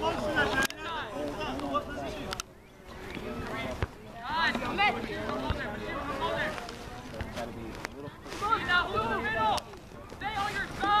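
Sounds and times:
players shouting: 8.3s - 11.0s.

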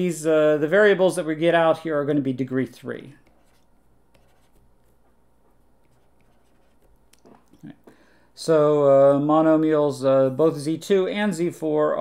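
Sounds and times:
stylus scratching on tablet screen: 3.2s - 5.1s, 5.8s - 7.3s.

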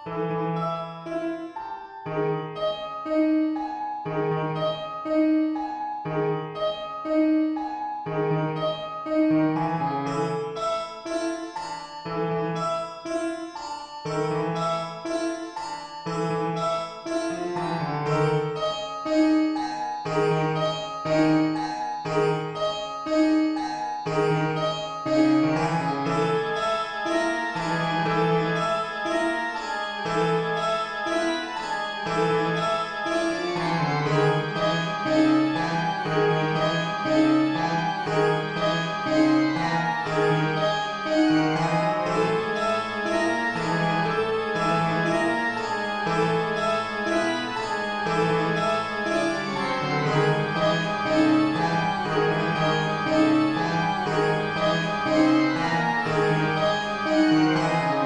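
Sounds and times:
harpsichord and organ music: 0.0s - 58.0s.

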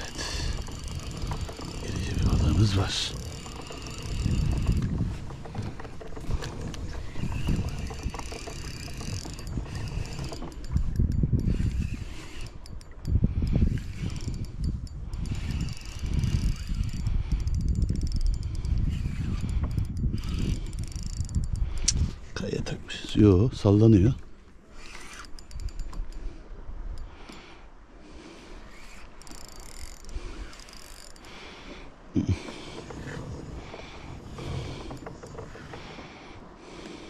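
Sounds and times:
kayak pedal drive clicking and whirring: 0.0s - 37.0s.

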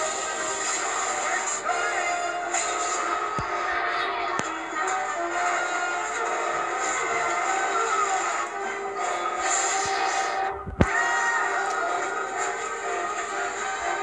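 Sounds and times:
film soundtrack music from television: 0.0s - 14.0s.

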